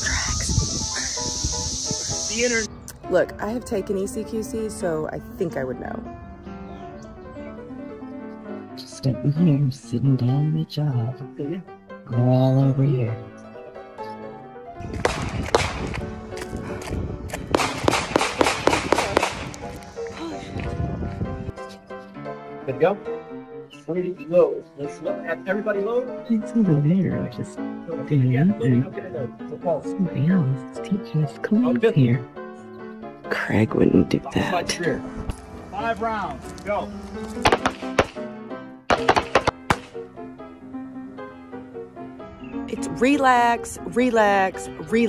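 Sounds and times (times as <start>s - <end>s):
background music: 0.0s - 45.0s
rapid gunshots: 15.0s - 15.8s, 17.6s - 19.5s, 37.4s - 38.2s, 38.9s - 40.0s
handgun shots: 15.0s - 15.9s, 17.6s - 19.5s, 37.4s - 38.2s, 38.9s - 40.0s.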